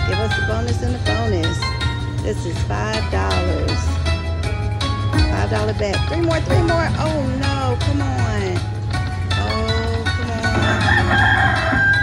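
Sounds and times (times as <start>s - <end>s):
slot machine game music: 0.0s - 12.0s
rooster crow sound effect: 10.7s - 12.0s.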